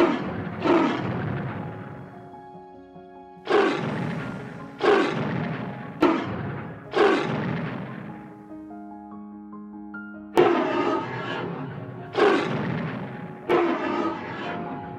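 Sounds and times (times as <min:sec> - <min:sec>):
dinosaur roaring: 0:00.0 - 0:01.2, 0:03.5 - 0:07.7, 0:10.4 - 0:14.7
soft background music: 0:00.0 - 0:14.9.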